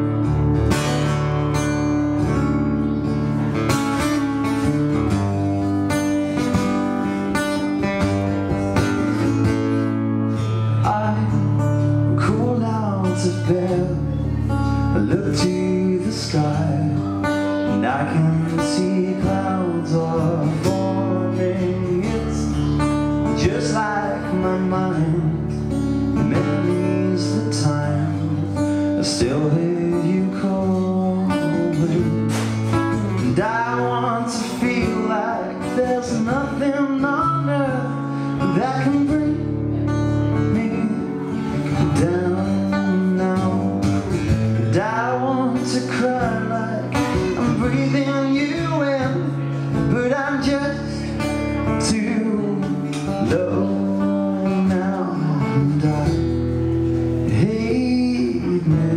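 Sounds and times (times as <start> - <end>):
electric bass: 0.0 - 58.9
man singing: 0.0 - 58.9
second guitar: 0.0 - 58.9
strummed acoustic guitar: 0.0 - 58.9.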